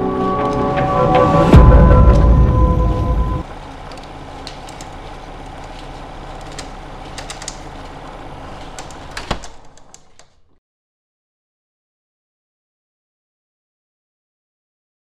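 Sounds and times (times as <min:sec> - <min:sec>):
loud music hit: 0:00.0 - 0:03.4
steady low hum: 0:00.0 - 0:10.5
clicks and crackles: 0:03.4 - 0:10.6.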